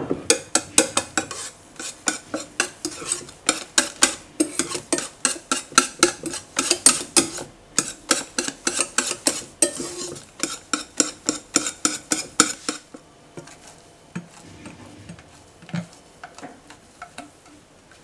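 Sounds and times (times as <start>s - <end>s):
whisk scraping bowl: 0.3s - 18.0s.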